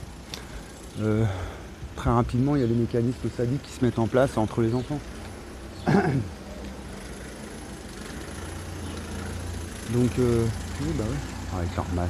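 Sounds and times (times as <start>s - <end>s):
car engine running: 4.1s - 12.0s.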